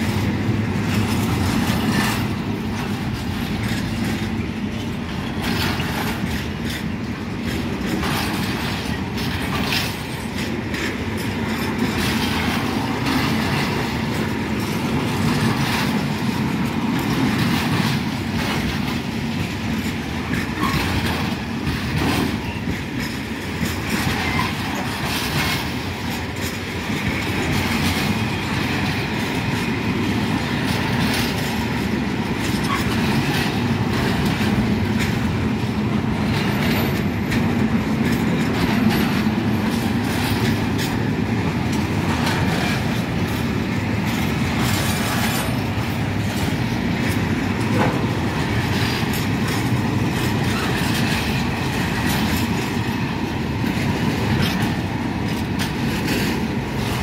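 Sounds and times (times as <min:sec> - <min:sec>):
train wheels rumbling on rail: 0:00.0 - 0:57.0
wheels clicking over track: 0:00.0 - 0:57.0.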